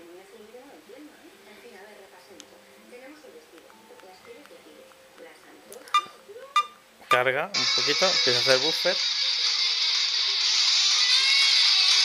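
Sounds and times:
tinny music from phone speaker: 2.4s - 12.0s.

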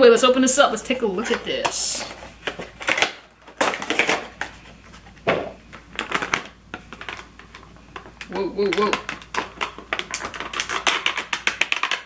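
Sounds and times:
plastic crinkling: 1.1s - 12.0s.

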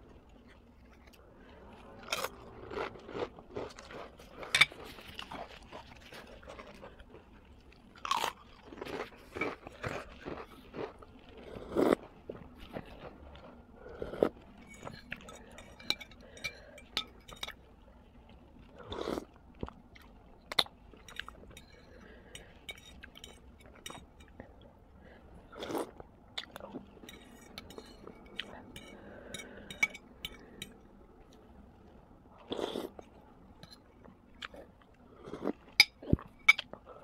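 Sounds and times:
person chewing noodles: 0.1s - 24.6s.

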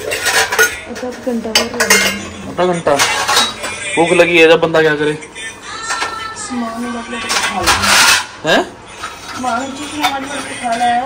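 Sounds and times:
metal utensils clinking and scraping: 0.0s - 4.2s, 7.0s - 11.0s.

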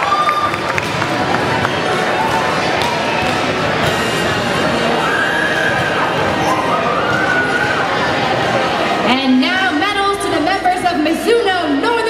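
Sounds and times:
crowd chattering and cheering: 0.0s - 12.0s.

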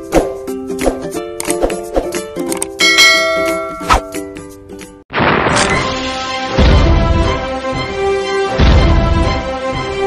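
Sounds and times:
plucked-string background music: 0.0s - 5.0s, 5.6s - 10.0s
bright bell-like ding: 2.8s - 4.4s.

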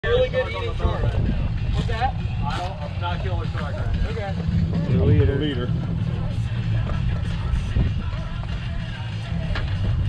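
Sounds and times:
indistinct voices: 0.0s - 10.0s
outboard motors idling: 0.1s - 10.0s.

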